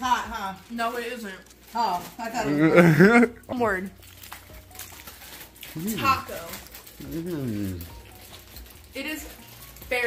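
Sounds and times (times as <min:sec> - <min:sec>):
crunching of crispy taco shell: 0:02.4 - 0:09.9.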